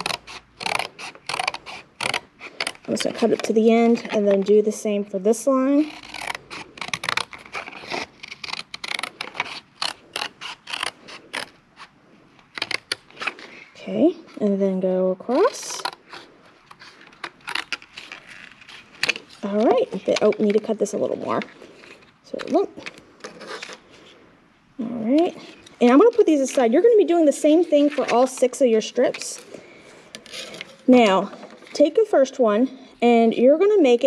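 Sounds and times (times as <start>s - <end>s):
scissors cutting cardboard: 0.0s - 4.6s, 5.5s - 11.9s, 12.5s - 13.6s, 15.3s - 20.7s
person speaking: 2.9s - 6.2s, 13.2s - 16.0s, 19.3s - 21.6s, 22.2s - 22.9s, 24.8s - 29.6s, 30.4s - 34.0s.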